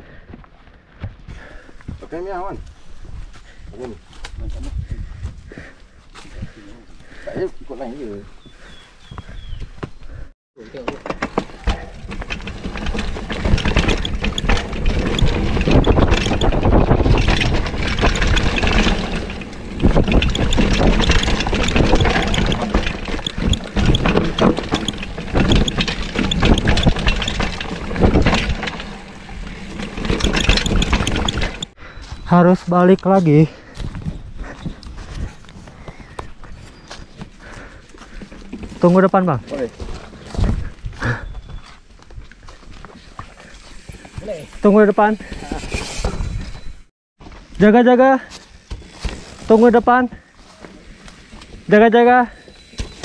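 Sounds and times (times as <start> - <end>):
bike rattling over rough ground: 1.0 - 53.0.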